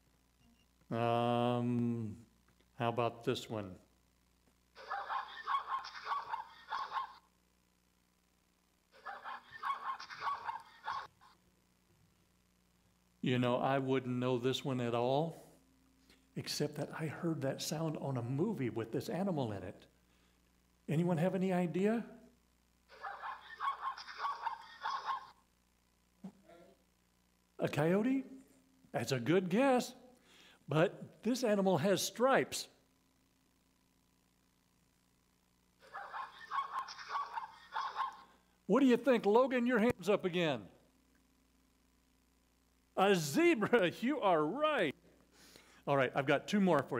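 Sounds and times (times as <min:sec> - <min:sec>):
zebra yelping calls from phone speaker: 0:23.0 - 0:25.4, 0:35.9 - 0:38.3.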